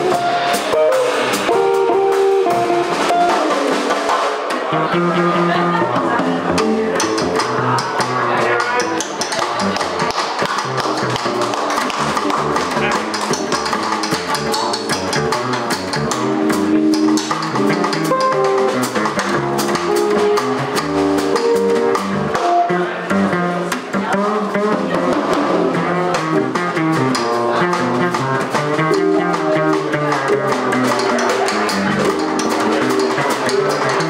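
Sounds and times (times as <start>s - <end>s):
drum kit with cymbals: 0.0s - 34.0s
electric guitar: 0.0s - 34.0s
plucked double bass: 0.0s - 34.0s.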